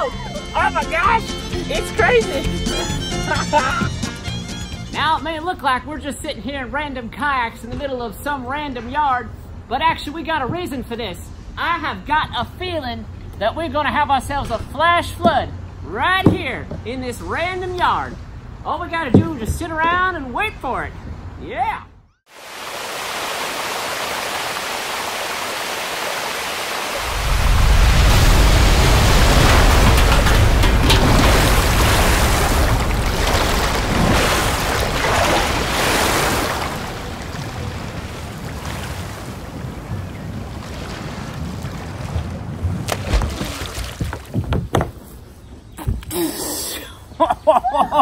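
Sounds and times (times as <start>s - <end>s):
floodwater rushing: 22.3s - 44.1s
deep rumble: 27.0s - 35.7s.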